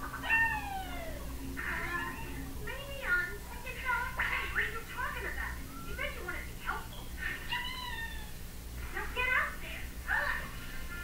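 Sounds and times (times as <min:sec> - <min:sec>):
cartoon squeaky calls and voices: 0:05.6 - 0:08.4.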